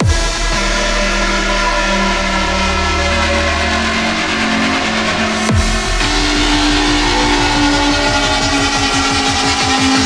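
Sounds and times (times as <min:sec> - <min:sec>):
pulsing bass line: 0:00.0 - 0:10.0
held synth note: 0:05.1 - 0:10.0.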